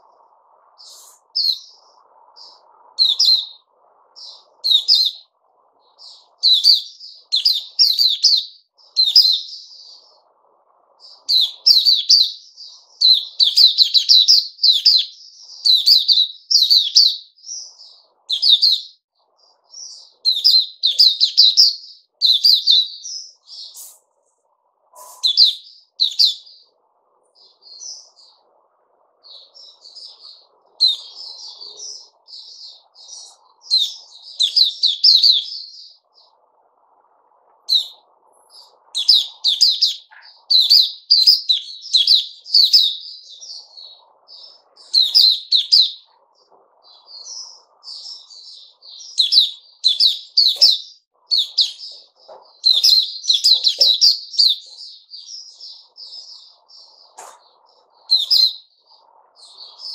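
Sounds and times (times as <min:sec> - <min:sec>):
bird twittering song: 0:00.0 - 0:59.9.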